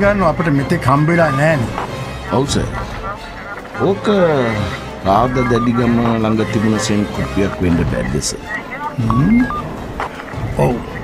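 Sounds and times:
person speaking: 3.8s - 9.5s
telephone keypad beeps: 4.5s - 6.9s, 8.0s - 9.7s.

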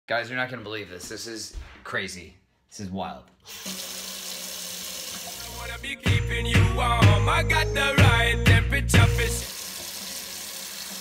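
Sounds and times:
water pouring into steel sink: 3.5s - 5.6s, 9.4s - 11.0s.

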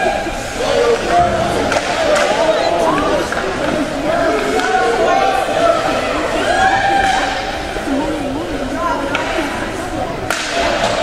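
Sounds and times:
spectators chatting: 0.0s - 11.0s
hockey puck sharp crack: 1.0s - 3.8s, 10.3s - 11.0s.

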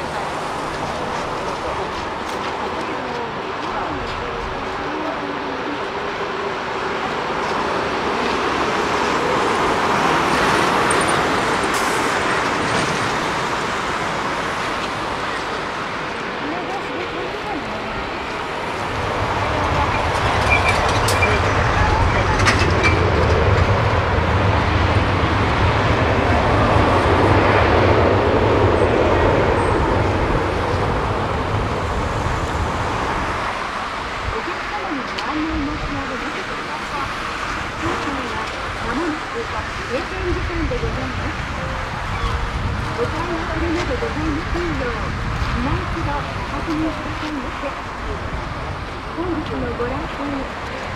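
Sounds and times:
jet engines rumbling: 0.0s - 50.9s.

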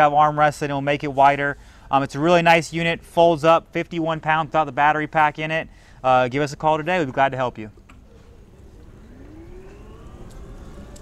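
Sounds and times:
electric motor whining: 8.1s - 11.0s.

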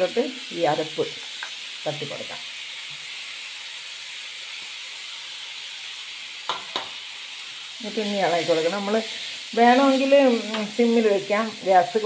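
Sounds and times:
greens sizzling in a frying pan: 0.0s - 12.0s.

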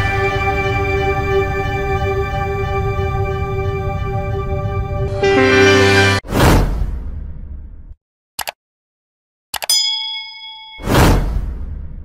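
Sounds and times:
bell ding: 9.7s - 11.0s.

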